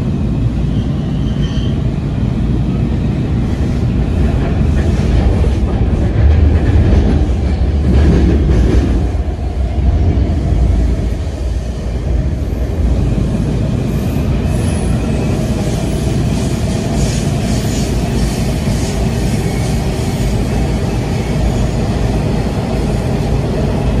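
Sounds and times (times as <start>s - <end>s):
train wheels rumbling on rails: 0.0s - 24.0s.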